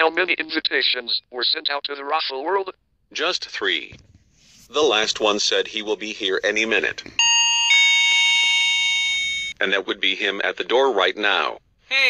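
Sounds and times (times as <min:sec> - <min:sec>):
two-note doorbell chime: 0:07.2 - 0:09.6.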